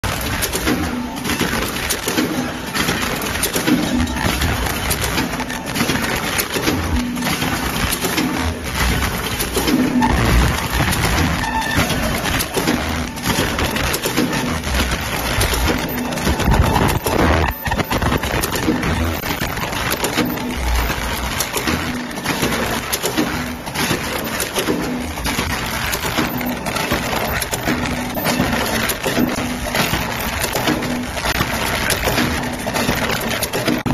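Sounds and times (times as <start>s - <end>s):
packing machine clattering: 0.0s - 33.9s
brief machine tone: 9.9s - 13.1s, 15.4s - 21.1s, 26.0s - 30.4s.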